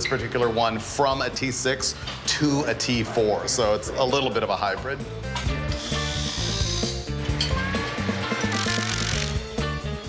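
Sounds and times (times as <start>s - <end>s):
background music with bass: 0.0s - 10.0s
electric ratchet whirring: 5.7s - 7.1s, 8.3s - 9.5s.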